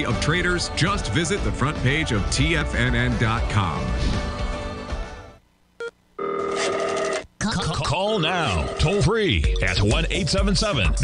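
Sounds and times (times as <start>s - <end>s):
telephone ringing: 5.8s - 7.2s, 8.1s - 9.1s
person speaking: 7.4s - 11.0s.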